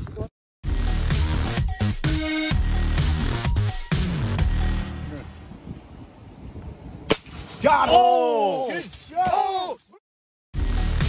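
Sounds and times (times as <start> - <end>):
dance music: 0.7 - 5.0
sharp crack: 7.1 - 7.8
man exclaiming: 7.6 - 10.0.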